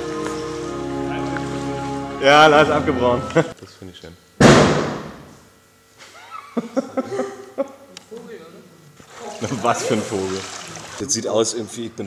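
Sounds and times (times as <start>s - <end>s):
loud bang: 4.4s - 5.3s.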